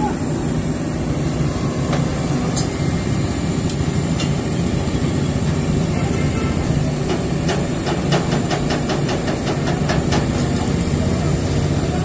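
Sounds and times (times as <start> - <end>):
excavator diesel engine running: 0.0 - 12.0.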